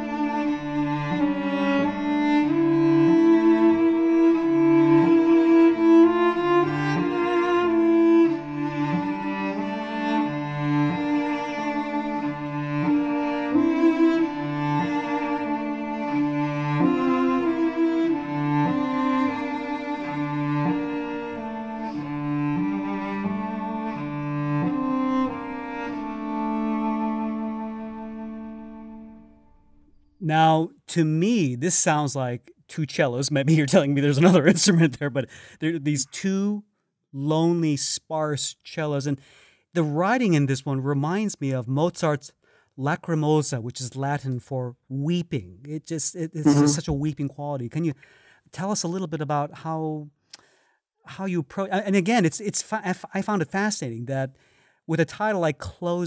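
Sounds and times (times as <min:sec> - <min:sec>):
two cellos playing slow duet: 0:00.0 - 0:29.4, 0:46.4 - 0:46.9.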